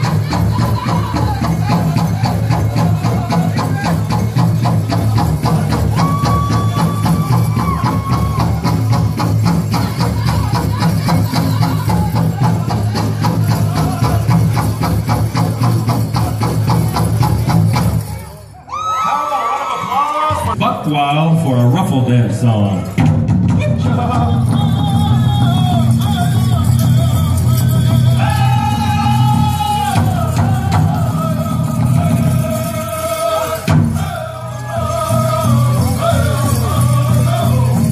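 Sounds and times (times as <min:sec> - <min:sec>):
men singing: 0:00.0 - 0:17.2, 0:23.5 - 0:37.9
big drum fast beat: 0:00.0 - 0:18.2, 0:22.9 - 0:37.9.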